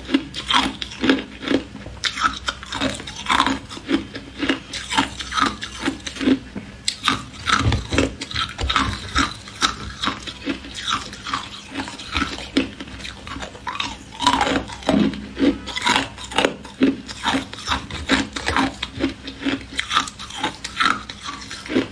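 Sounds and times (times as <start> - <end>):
ice being chewed: 0.0 - 21.9.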